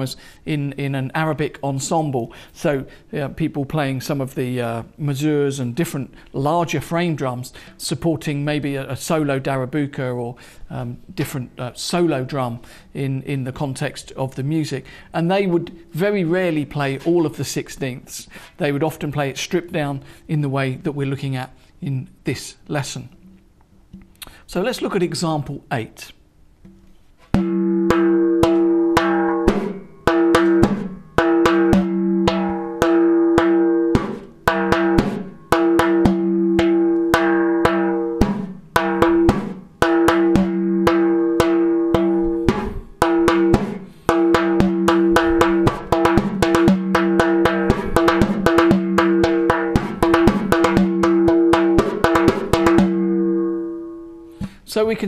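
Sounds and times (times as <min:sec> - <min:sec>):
frame drum played by hand: 0:27.3 - 0:54.1.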